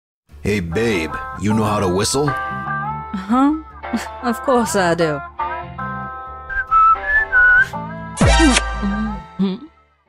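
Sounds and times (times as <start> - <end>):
background music: 0.3 - 10.0
person whistling: 6.5 - 7.8.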